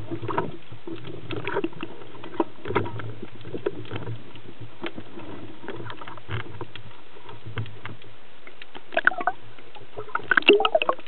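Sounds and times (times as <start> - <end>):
underwater low hum: 0.0 - 11.0.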